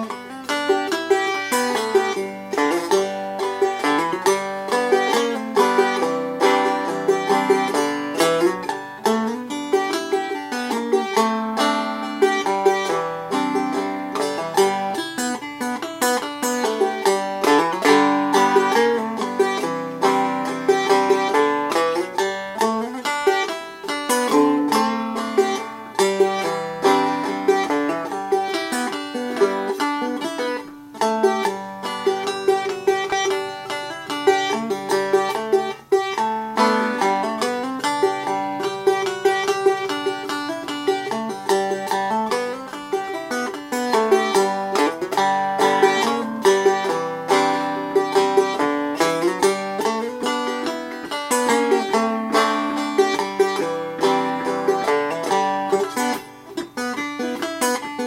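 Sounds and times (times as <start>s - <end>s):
banjo picked quickly: 0.0s - 58.0s.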